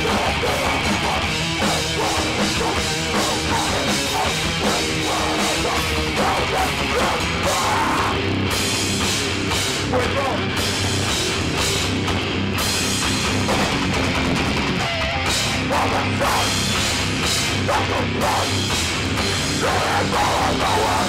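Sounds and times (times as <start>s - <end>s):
hardcore punk band playing: 0.0s - 21.0s.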